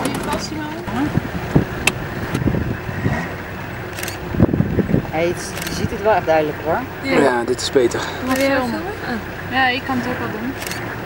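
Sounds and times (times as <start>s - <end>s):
vehicle engine running: 0.0s - 11.0s.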